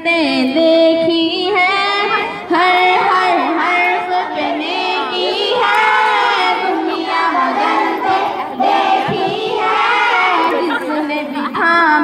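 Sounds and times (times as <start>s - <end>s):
children singing in unison: 1.7s - 11.4s.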